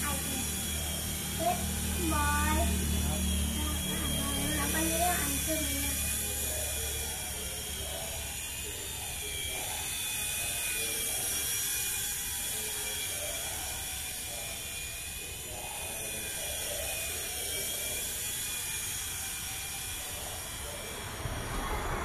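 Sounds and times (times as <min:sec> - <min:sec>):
toy helicopter motor whine: 0:00.0 - 0:22.0.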